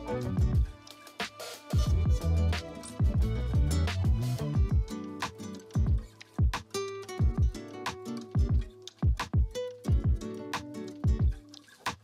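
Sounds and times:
held bass notes: 0.0 - 0.7, 1.9 - 4.7
crisp high percussion: 0.0 - 12.0
deep booming bass drum hits: 0.4 - 0.7, 1.8 - 2.2.

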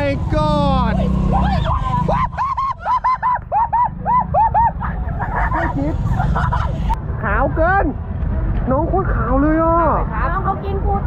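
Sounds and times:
woman squealing: 1.3 - 3.0.

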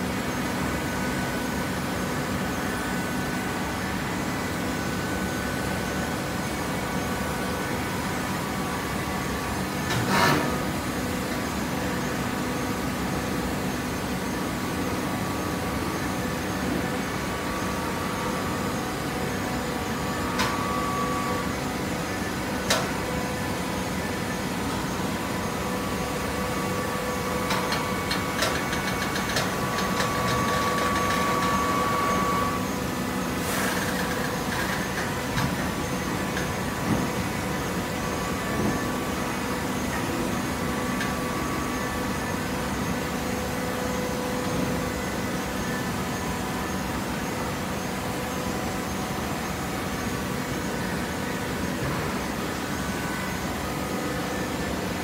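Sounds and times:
hydraulic baler humming: 13.6 - 55.0.

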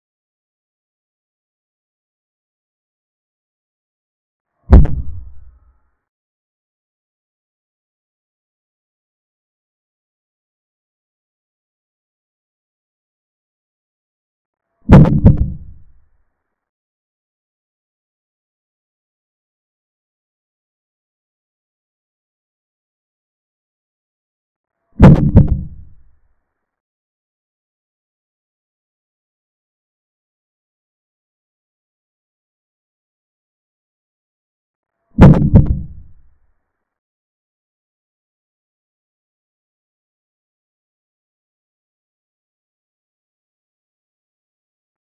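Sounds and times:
heavy low thuds: 4.7 - 5.5, 14.9 - 15.8, 25.0 - 25.9, 35.2 - 36.2.

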